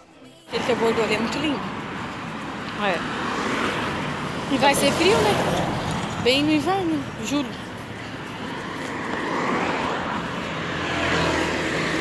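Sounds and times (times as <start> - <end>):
cars going by: 0.0 - 12.0.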